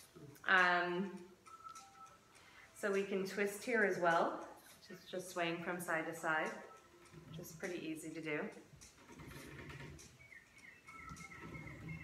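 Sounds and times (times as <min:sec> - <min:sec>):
faint bird chirping: 0:10.0 - 0:12.0.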